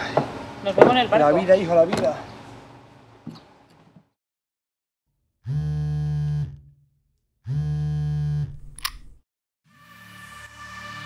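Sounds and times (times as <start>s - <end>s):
music: 9.6s - 11.0s.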